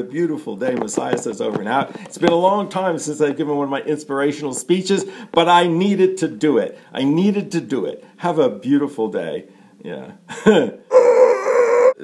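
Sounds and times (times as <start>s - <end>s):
man laughing: 10.3s - 11.9s.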